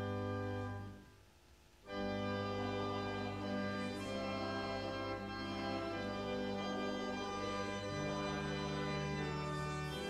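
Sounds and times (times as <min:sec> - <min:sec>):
pipe organ playing a hymn: 0:00.0 - 0:01.1, 0:01.8 - 0:10.0.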